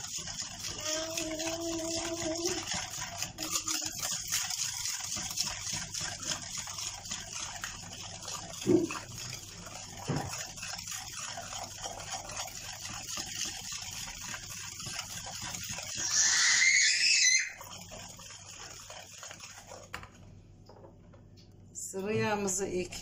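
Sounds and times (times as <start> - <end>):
whisk beating batter in bowl: 0.0 - 20.4, 22.0 - 23.0.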